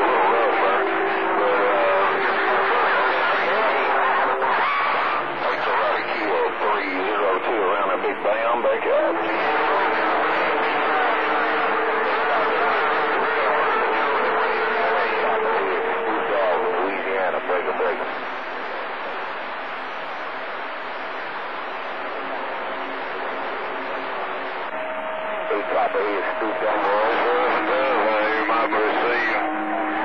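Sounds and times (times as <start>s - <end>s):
faint garbled voices: 0.0s - 30.0s
radio static: 0.0s - 30.0s.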